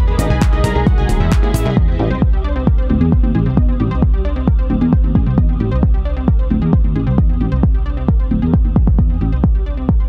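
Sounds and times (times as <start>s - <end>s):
kick drum: 0.0s - 10.0s
techno music: 0.0s - 10.0s.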